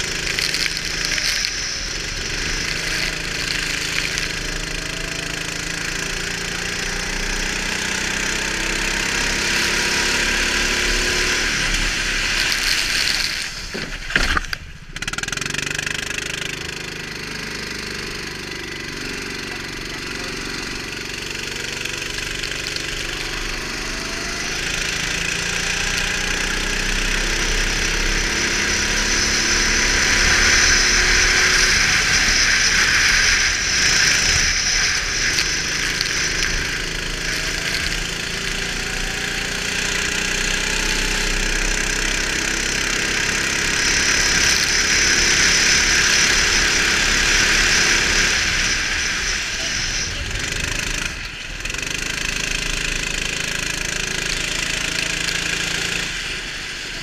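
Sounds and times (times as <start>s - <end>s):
go-kart engine racing: 0.0s - 57.0s
hiss of wind and spray: 20.1s - 57.0s.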